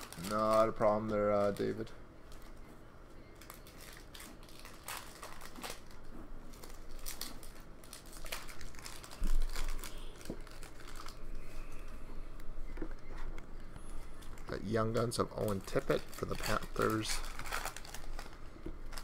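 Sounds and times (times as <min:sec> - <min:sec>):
foil wrapper crinkling and tearing: 0:00.0 - 0:02.5, 0:03.4 - 0:11.4, 0:14.2 - 0:19.0.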